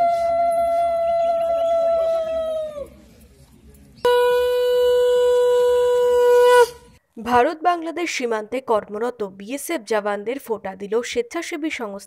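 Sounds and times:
conch shell blasts: 4.1s - 6.9s.

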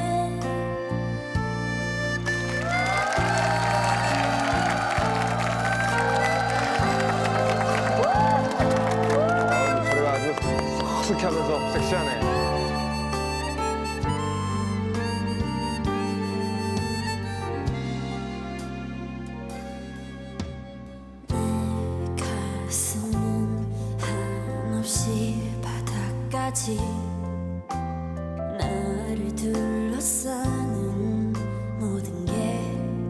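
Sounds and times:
ballad with sustained chords: 0.0s - 33.0s
harmonica holding a long note: 0.8s - 18.3s
audience applause and cheering: 2.2s - 14.6s.

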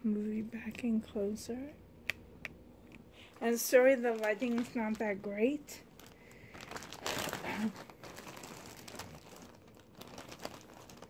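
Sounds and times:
plastic bag crinkling: 3.2s - 11.0s.

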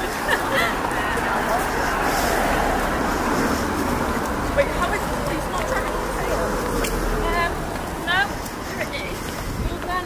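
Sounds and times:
crowd chatter: 0.0s - 10.0s
road traffic: 0.0s - 10.0s.

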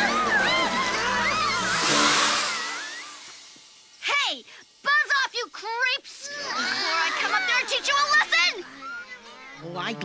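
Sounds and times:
cartoon whoosh: 0.0s - 3.4s.

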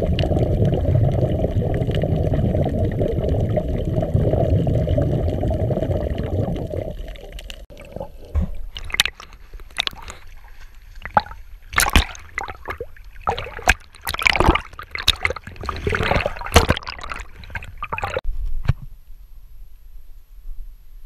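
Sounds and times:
muffled underwater water rush: 0.0s - 18.2s
short sharp splashes: 11.0s - 18.2s.

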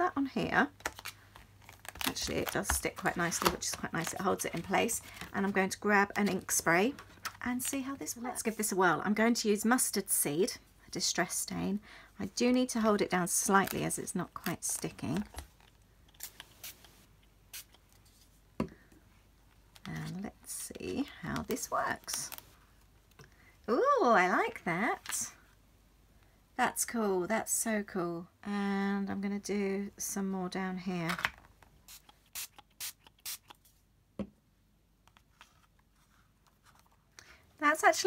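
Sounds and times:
spray bottle hisses: 31.9s - 33.5s.

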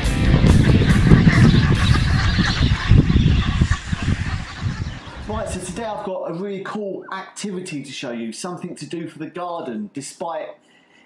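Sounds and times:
geese honking: 0.0s - 6.0s.

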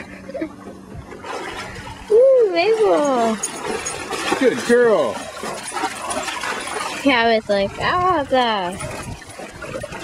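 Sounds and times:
water rushing: 1.2s - 10.0s
dog splashing through stream: 2.6s - 10.0s.

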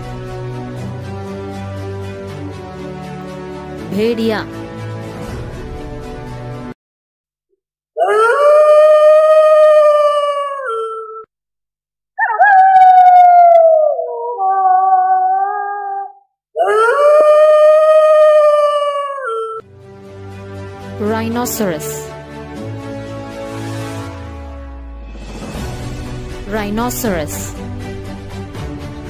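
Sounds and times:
wolf howling: 8.0s - 11.3s, 12.2s - 19.6s.

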